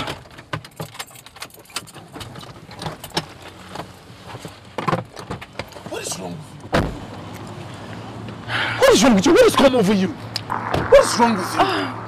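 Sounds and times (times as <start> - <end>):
small clicks and rattles: 0.0 - 5.8.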